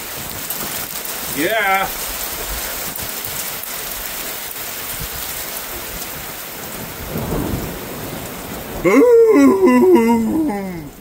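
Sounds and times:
heavy rain pouring: 0.0s - 11.0s
low rumble of thunder: 4.9s - 9.6s.

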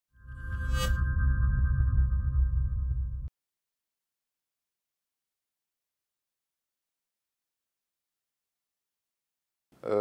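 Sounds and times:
bright shimmer: 0.2s - 3.3s.

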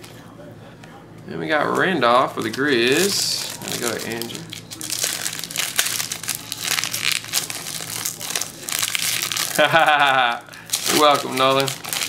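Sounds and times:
faint low hum: 0.0s - 12.0s
foil wrapper crinkling: 1.6s - 12.0s.

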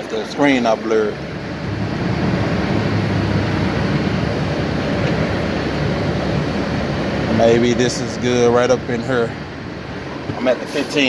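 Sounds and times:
diesel truck engine humming: 0.0s - 11.0s.

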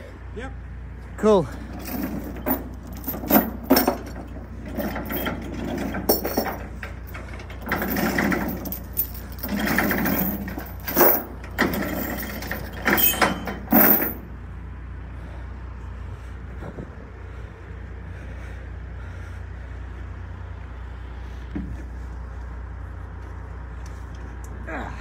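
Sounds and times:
low engine drone: 0.0s - 25.0s
steel chains clanking and rattling: 1.5s - 14.4s.

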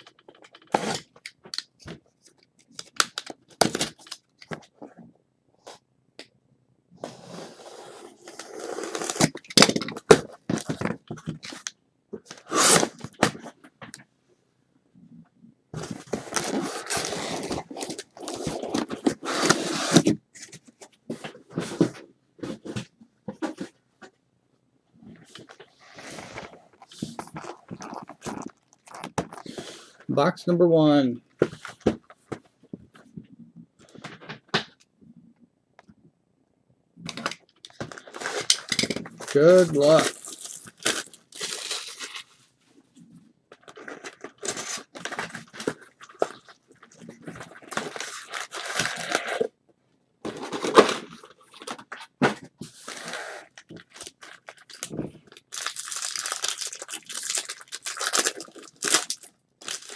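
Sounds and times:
plastic wrap crinkling and tearing: 26.0s - 29.6s, 37.1s - 42.3s, 43.5s - 49.5s, 52.8s - 59.9s.

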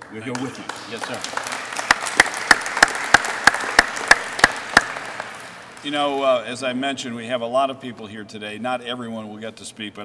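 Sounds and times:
audience applauding: 0.0s - 6.1s
loud close hand claps: 0.0s - 6.2s.

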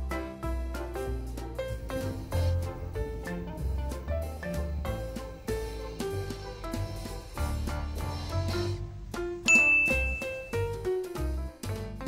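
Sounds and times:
background music with beat: 0.0s - 12.0s
bright high ding: 9.5s - 10.6s.

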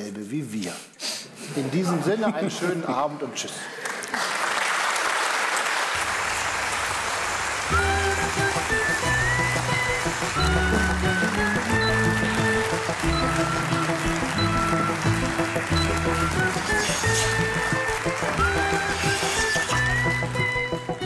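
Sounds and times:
audience applause: 3.8s - 21.0s
theme music with bass line: 7.7s - 21.0s.

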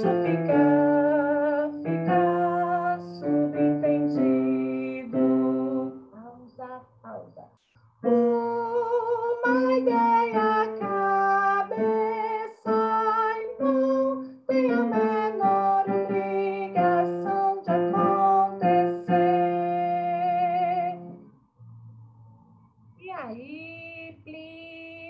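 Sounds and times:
woman singing unaccompanied: 0.0s - 7.4s, 8.0s - 21.2s, 23.0s - 25.0s.

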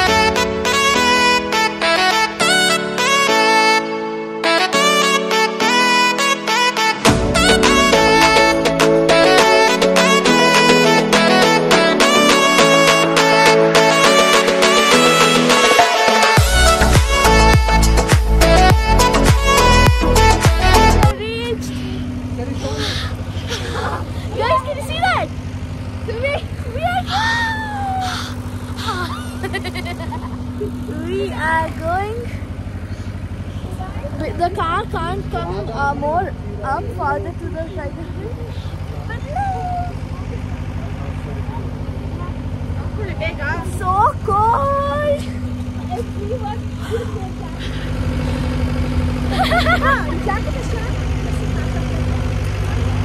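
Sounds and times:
vehicle engine idling: 0.0s - 3.8s, 4.9s - 53.0s
low mechanical hum: 21.1s - 53.0s
voices: 21.1s - 53.0s
girls shrieking and laughing: 26.1s - 30.9s, 39.2s - 40.5s, 49.2s - 50.4s.

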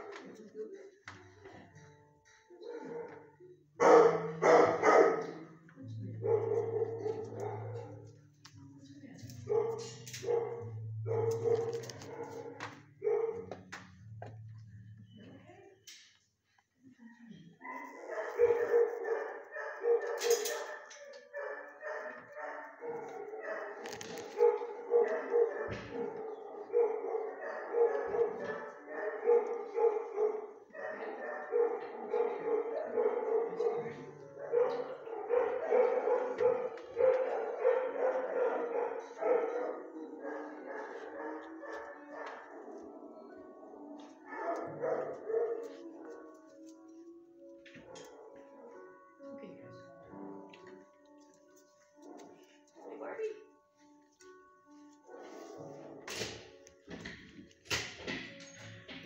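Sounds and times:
dogs barking: 0.0s - 0.4s, 2.6s - 8.2s, 9.2s - 14.4s, 17.6s - 49.3s, 51.9s - 53.0s, 55.0s - 58.2s.

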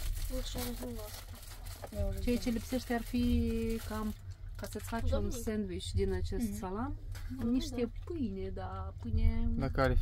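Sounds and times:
train running rumble: 2.2s - 7.0s.

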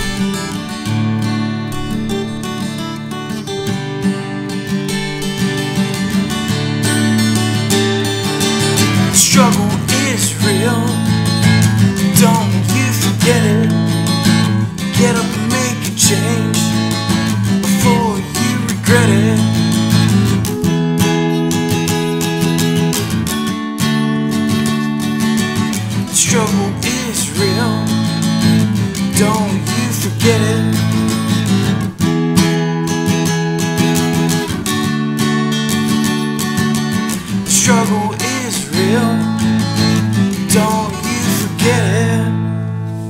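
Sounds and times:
acoustic guitar strumming: 0.0s - 43.0s.

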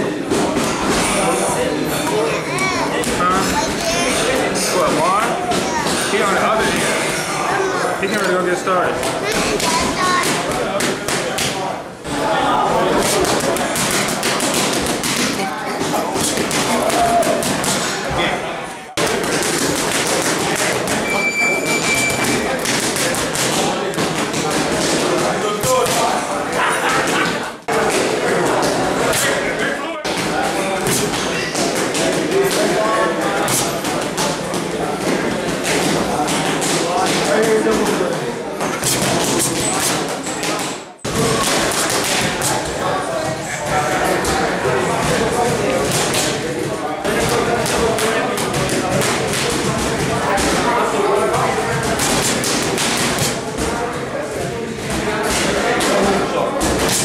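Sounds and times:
voices in gym: 0.0s - 57.0s
boxing gloves striking mitts: 13.0s - 18.0s, 21.9s - 26.1s, 33.4s - 34.4s, 38.6s - 42.7s, 51.7s - 53.8s.

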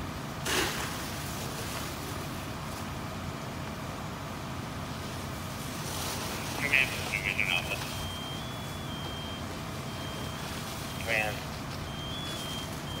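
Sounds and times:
brief voices: 6.5s - 12.7s
high electronic warning beeps: 6.6s - 13.0s.

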